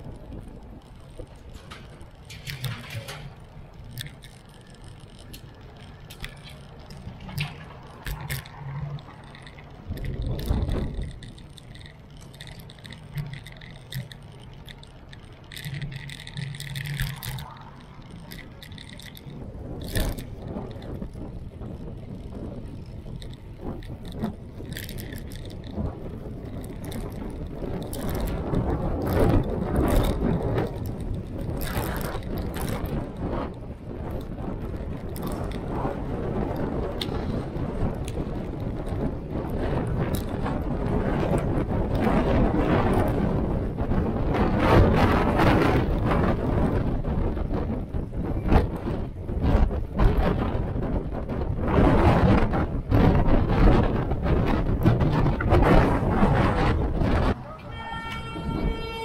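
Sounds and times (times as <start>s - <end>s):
bicycle rattles and clicks: 0.0s - 59.0s
wind buffeting microphone: 0.0s - 59.0s.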